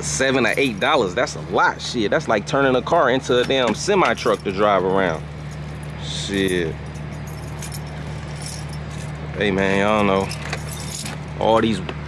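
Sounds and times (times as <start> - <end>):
vehicle engine idling: 0.0 - 12.0
light metallic jingles: 0.2 - 1.4, 3.3 - 11.7.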